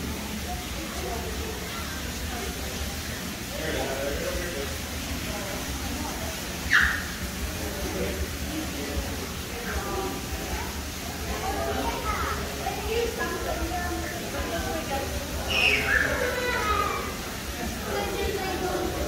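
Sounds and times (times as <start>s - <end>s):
indistinct background chatter: 0.0s - 19.0s.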